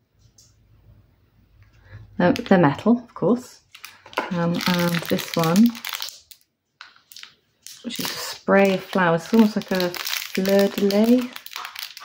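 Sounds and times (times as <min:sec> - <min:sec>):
plastic bag crinkling: 0:03.6 - 0:12.0.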